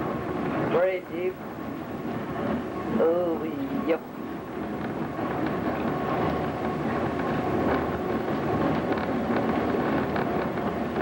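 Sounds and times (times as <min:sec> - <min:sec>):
faint train whine: 0:00.0 - 0:11.0
train rumbling and rattling: 0:00.0 - 0:11.0.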